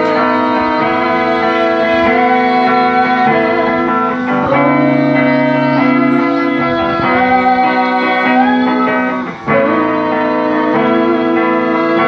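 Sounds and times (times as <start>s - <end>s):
band playing live: 0.0s - 12.0s
electric guitar chords: 0.0s - 12.0s.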